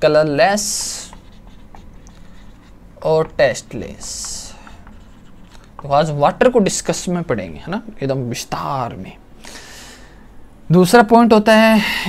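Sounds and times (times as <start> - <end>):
low room hum: 0.0 - 12.0
marker writing on whiteboard: 0.5 - 7.7.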